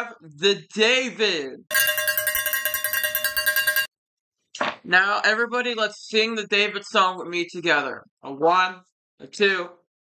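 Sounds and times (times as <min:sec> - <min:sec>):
handbell rung rapidly: 0:01.7 - 0:03.9.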